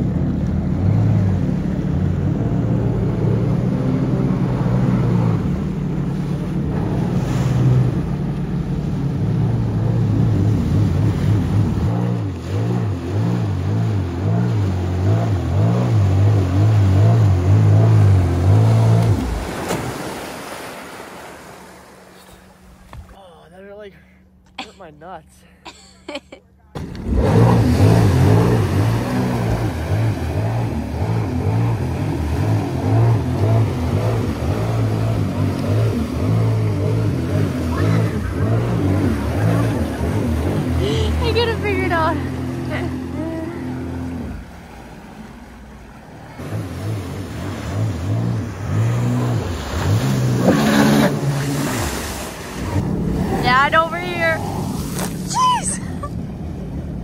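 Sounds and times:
jet ski engine running: 0.0s - 57.0s.

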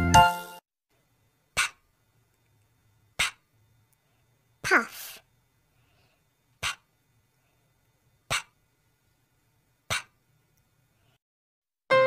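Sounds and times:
person making puffing p sounds: 1.6s - 1.8s, 3.2s - 3.5s, 6.6s - 6.9s, 8.3s - 8.6s, 9.9s - 10.2s.

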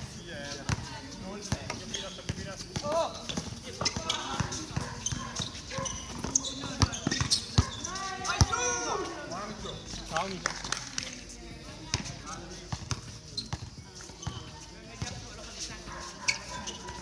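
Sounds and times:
basketball bouncing on hard court: 0.6s - 0.9s, 1.5s - 8.6s, 11.9s - 15.2s
players calling out: 1.9s - 10.1s.

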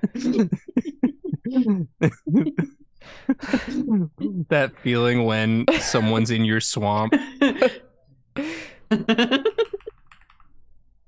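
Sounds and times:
person making voiced sounds: 0.2s - 2.7s, 3.3s - 6.2s.

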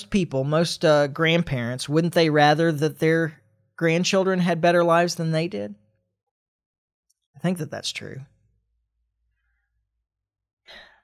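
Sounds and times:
man breathing: 10.7s - 11.0s.

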